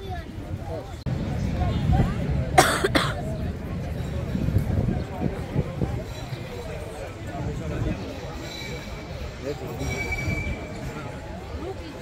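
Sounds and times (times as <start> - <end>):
person coughing: 2.6 - 3.2.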